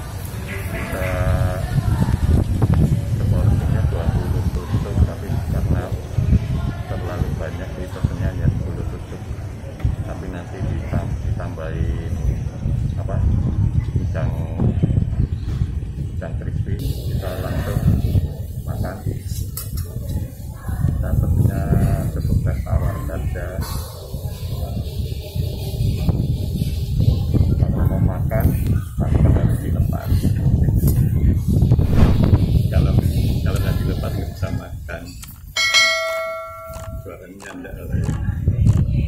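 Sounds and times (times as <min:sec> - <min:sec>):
indistinct talk: 0:00.0 - 0:39.0
steady low rumble: 0:31.6 - 0:33.6
bell chime ringing: 0:35.6 - 0:37.2.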